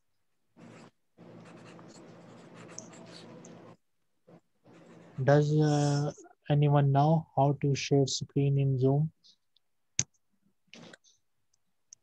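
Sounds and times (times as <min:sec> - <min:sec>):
stylus scratching on tablet: 0:00.6 - 0:06.1.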